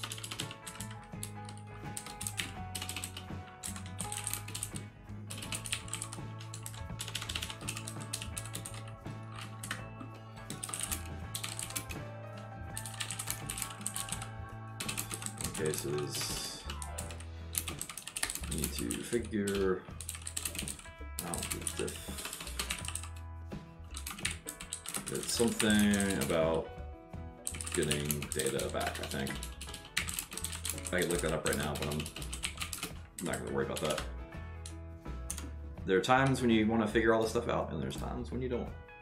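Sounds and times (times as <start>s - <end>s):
computer keyboard typing: 0.0s - 23.2s, 23.9s - 26.5s, 27.4s - 34.1s
quiet background music: 0.0s - 39.0s.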